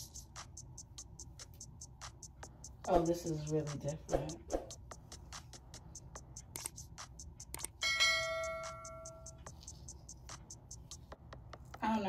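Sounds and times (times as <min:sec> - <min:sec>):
bell-like notification chime: 0:07.8 - 0:09.2.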